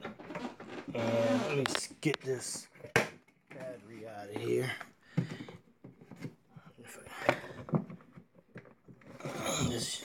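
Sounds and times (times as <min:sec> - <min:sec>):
clicks and knocks on plastic: 0:01.6 - 0:06.4, 0:07.2 - 0:09.8.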